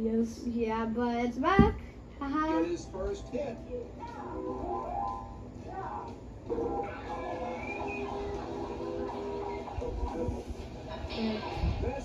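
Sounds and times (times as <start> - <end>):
tv clip audio: 0.0 - 12.0.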